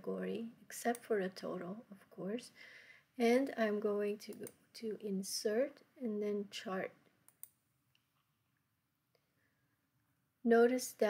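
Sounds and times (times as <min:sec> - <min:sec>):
faint mouse clicks: 0:04.2 - 0:04.6, 0:07.3 - 0:08.1.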